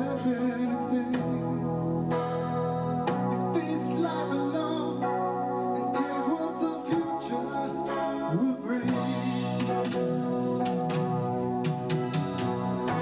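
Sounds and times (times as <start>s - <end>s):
bass guitar: 0.0s - 13.0s
drums: 0.0s - 13.0s
electric guitar: 0.0s - 13.0s
keyboards: 0.0s - 13.0s.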